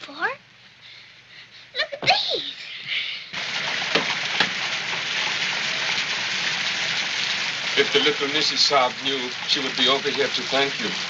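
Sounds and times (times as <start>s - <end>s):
rain falling: 3.4s - 11.0s.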